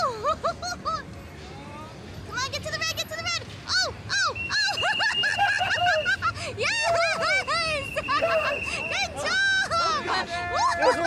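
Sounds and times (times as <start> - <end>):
people cheering and whooping: 4.1 - 11.0.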